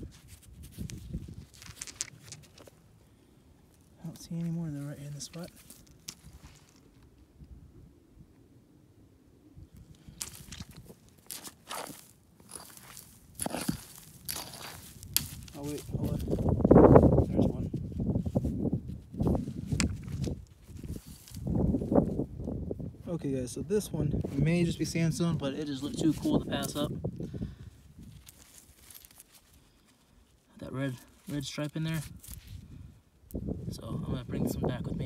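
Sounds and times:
rock pick scraping gravelly soil: 0:00.0 - 0:02.8, 0:04.0 - 0:07.0, 0:09.8 - 0:17.6, 0:19.2 - 0:22.0, 0:23.8 - 0:27.0, 0:28.0 - 0:32.6
crunching footsteps: 0:03.7 - 0:07.2, 0:09.8 - 0:22.0, 0:28.0 - 0:32.6.

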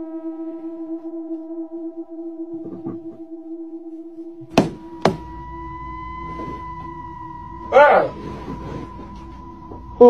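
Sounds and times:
droning tone: 0:00.0 - 0:10.0
higher held tones: 0:00.0 - 0:10.0
sharp knocks: 0:04.5 - 0:05.3.

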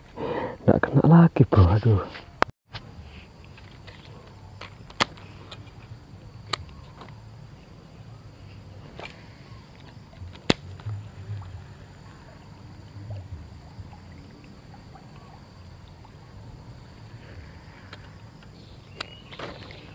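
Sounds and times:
low steady rumble: 0:09.4 - 0:18.5.

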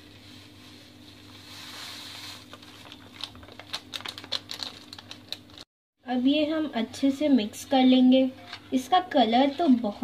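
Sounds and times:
foil sachet rustling: 0:00.4 - 0:05.7.

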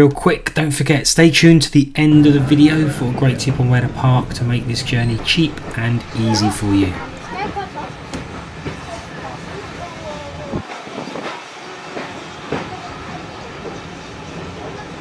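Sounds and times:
train carriage rumbling on rails: 0:00.0 - 0:15.0.

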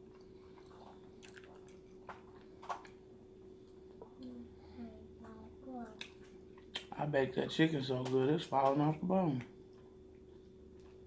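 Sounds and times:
person chewing food: 0:00.0 - 0:04.2, 0:09.4 - 0:11.0
steady faint hum: 0:00.0 - 0:11.0.

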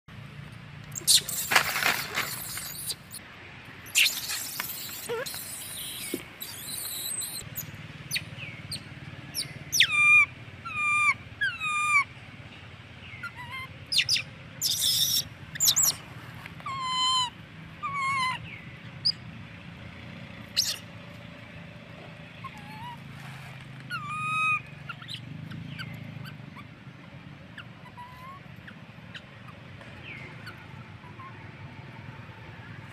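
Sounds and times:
baby macaque shrill calls: 0:01.0 - 0:03.2, 0:03.8 - 0:08.8, 0:09.4 - 0:12.1, 0:13.2 - 0:16.0, 0:16.7 - 0:18.4, 0:20.6 - 0:20.8, 0:23.9 - 0:25.2.

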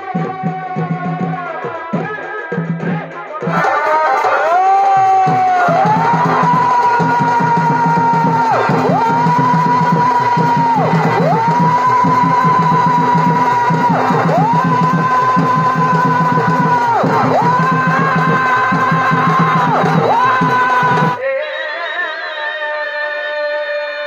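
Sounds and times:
fast steady drum beat: 0:00.0 - 0:21.2.

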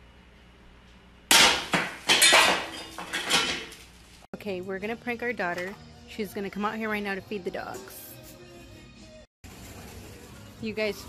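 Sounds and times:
frying pans and spatula clattering: 0:01.3 - 0:03.9.

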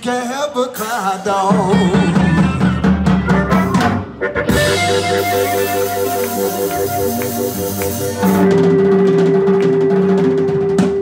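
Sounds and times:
electric blues band playing: 0:00.7 - 0:11.0
harmonica chord: 0:03.4 - 0:10.6.

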